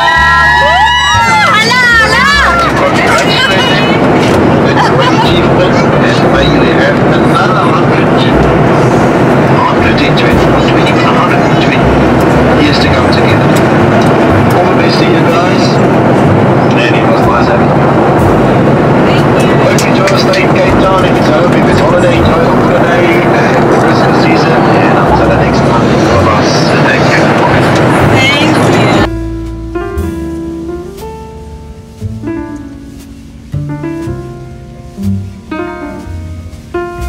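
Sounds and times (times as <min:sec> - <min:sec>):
airliner engine rush: 0:00.0 - 0:36.8
babble of voices: 0:01.2 - 0:11.8.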